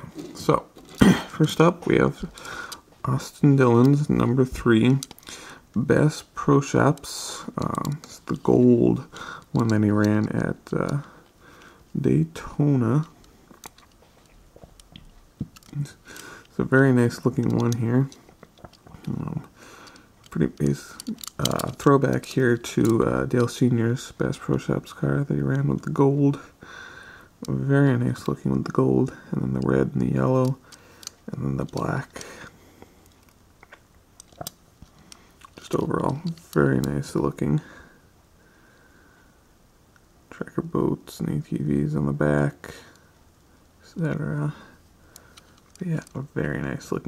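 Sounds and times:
faint clicks of toy car handled: 45.2 - 46.2.

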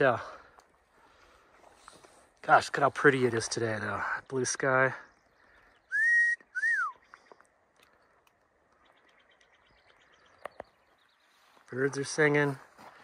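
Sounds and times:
whistled notes: 5.9 - 7.1
faint clicks: 7.0 - 10.8.

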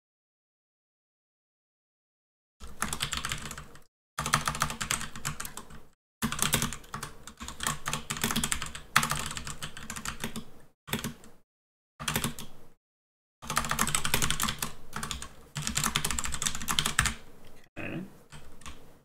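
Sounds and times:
fast typing on keyboard: 2.6 - 11.4, 12.0 - 12.6, 13.4 - 17.2, 18.3 - 18.8.

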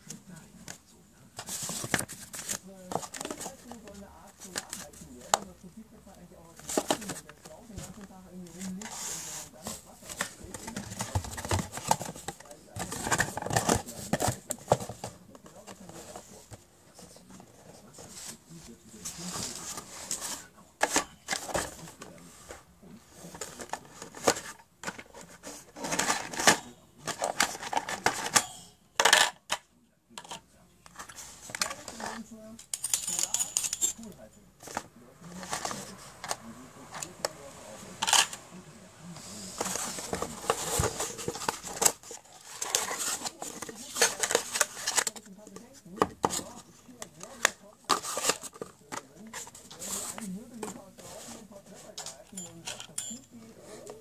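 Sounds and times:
cardboard box rustling and clicking: 1.4 - 5.5, 6.6 - 16.6, 39.4 - 50.8.

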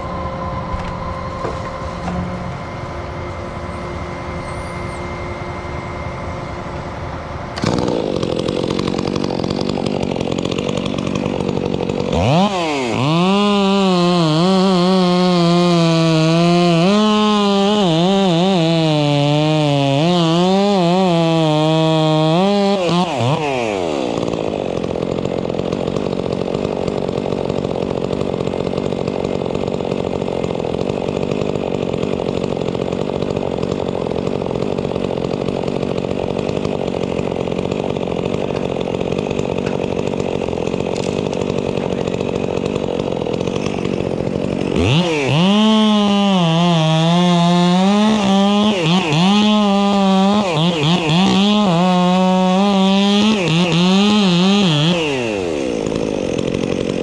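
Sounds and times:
chainsaw cutting wood: 0.0 - 57.0.

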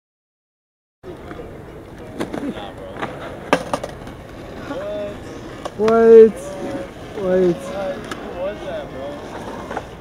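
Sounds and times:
faint voices: 1.0 - 10.0.

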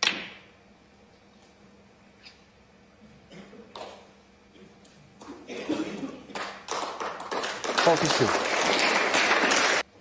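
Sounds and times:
snooker balls cracking: 0.0 - 0.5.

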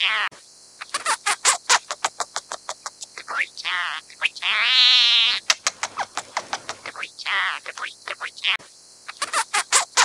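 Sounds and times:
bird calling rapid clipped notes: 0.9 - 3.3, 5.3 - 7.1.

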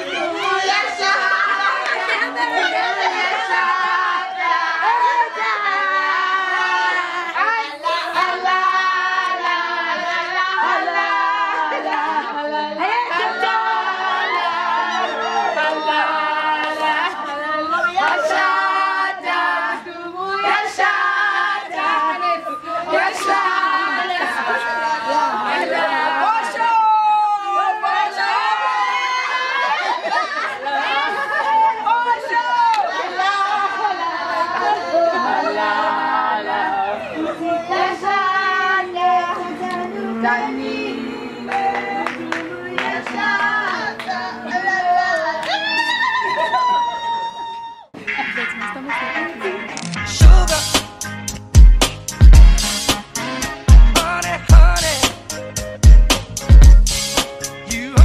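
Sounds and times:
women chattering and calling out: 0.0 - 3.6, 44.3 - 49.9
women singing together: 0.0 - 47.6
drawn-out voiced notes: 35.7 - 44.5.

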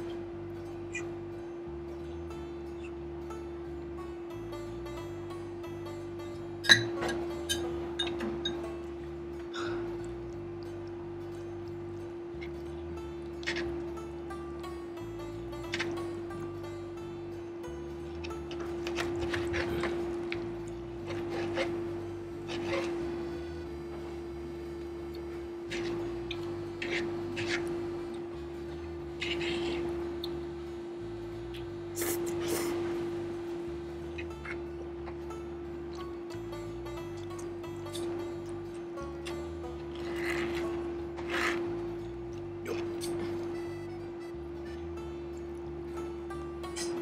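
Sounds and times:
background music with bass line: 0.0 - 47.0.

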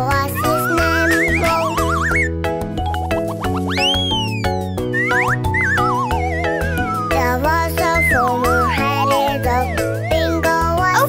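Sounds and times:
instrumental children's music: 0.0 - 11.0
cartoon pitch glide effects: 0.4 - 11.0.

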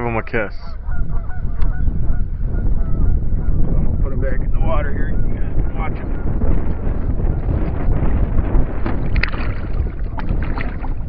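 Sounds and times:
geese honking: 0.0 - 3.2
wind rumble on microphone: 0.0 - 11.0.

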